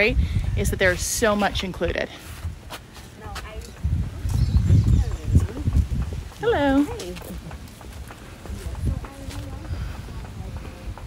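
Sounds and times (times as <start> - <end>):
irregular thuds: 2.4 - 11.0.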